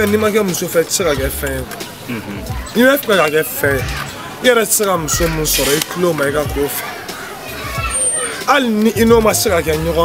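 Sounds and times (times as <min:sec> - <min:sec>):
man talking: 0:00.0 - 0:06.8, 0:08.5 - 0:10.0.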